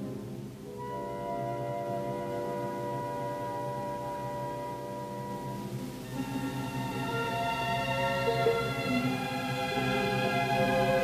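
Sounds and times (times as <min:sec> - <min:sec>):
orchestra sustained chord: 0:00.1 - 0:11.0.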